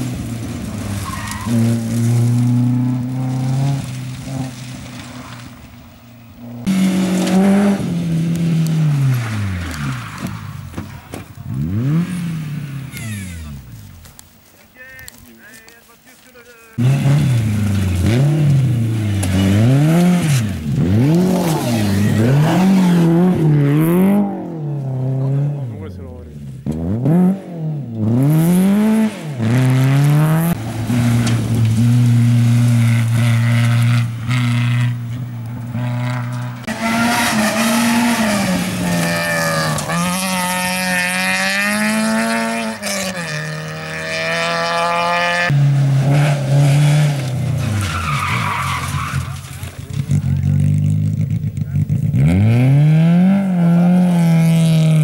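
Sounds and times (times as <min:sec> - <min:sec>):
rally car engines revving: 0:00.0 - 0:14.2, 0:16.7 - 0:55.0.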